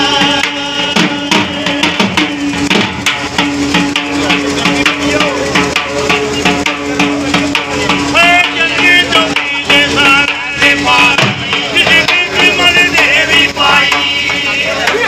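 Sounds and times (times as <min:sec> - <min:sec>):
dhol drum beating folk rhythm: 0:00.0 - 0:15.0
held instrument tone: 0:00.0 - 0:15.0.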